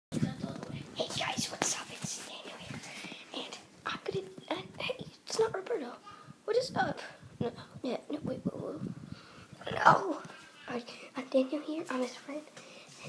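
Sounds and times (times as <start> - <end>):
boy whispering: 0.2 - 6.4, 9.6 - 13.0.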